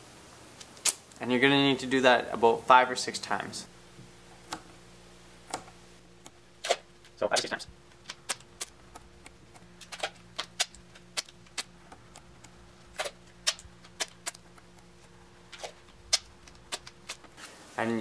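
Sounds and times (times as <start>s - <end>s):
duct tape tearing: 6.6s - 8.8s, 12.9s - 14.5s, 15.5s - 17.4s.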